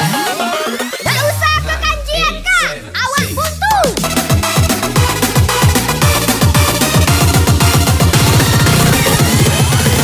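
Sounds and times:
high pitch-bending voice samples: 1.0s - 4.1s.

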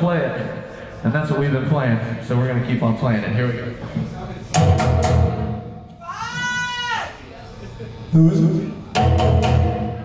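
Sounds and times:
loud ringing hit: 4.6s - 5.9s
guitar and percussion band: 9.0s - 10.0s.

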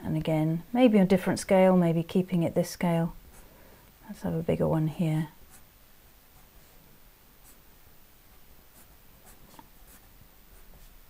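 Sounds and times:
pencil scratching on paper: 5.5s - 5.7s, 7.4s - 7.6s, 8.3s - 11.0s.

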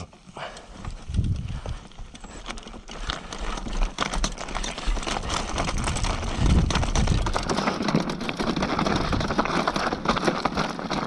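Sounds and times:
mountain bike clattering over rocks: 0.0s - 11.0s.

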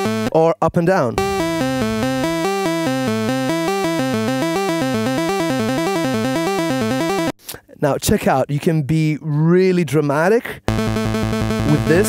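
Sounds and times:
held synthesizer chord: 0.0s - 0.3s, 1.2s - 7.3s, 10.7s - 12.0s
synthesizer arpeggio: 0.0s - 0.4s, 1.2s - 7.3s, 10.7s - 12.0s.

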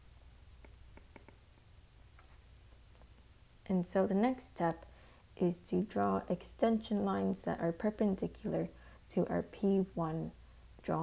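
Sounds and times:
low room hum: 0.0s - 11.0s
stylus tapping on glass screen: 0.5s - 1.4s.

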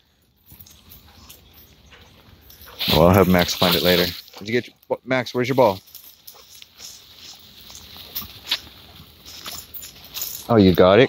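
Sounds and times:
dogs moving on dry leaves: 0.6s - 4.7s, 5.4s - 11.0s.

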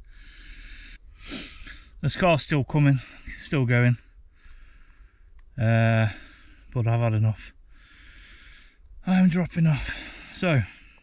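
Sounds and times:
man breathing out: 0.0s - 2.0s, 4.3s - 5.3s, 7.6s - 8.9s.

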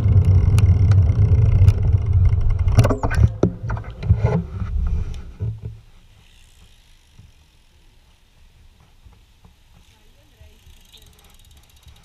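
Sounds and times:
bicycle freewheel ticking: 6.1s - 8.3s, 9.1s - 12.0s.

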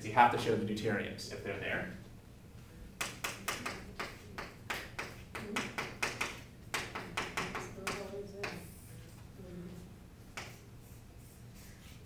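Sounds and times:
chalk tapping and scratching on blackboard: 3.0s - 9.3s, 10.3s - 12.0s.

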